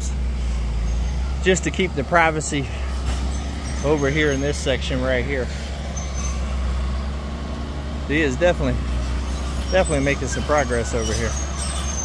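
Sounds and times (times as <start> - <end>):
bulldozer diesel engine rumbling: 0.0 - 12.0.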